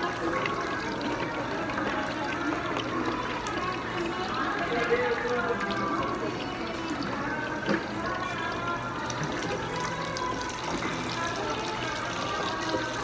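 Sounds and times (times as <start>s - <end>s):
background music: 0.0s - 13.0s
chatter: 0.0s - 13.0s.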